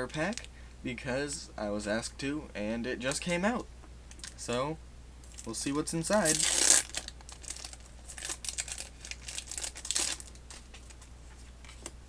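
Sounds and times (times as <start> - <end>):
foil wrapper tearing and crinkling: 6.1 - 11.0.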